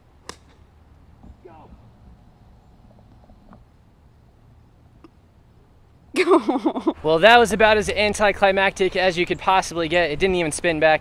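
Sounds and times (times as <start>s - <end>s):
golf club striking ball: 0.2s - 0.7s.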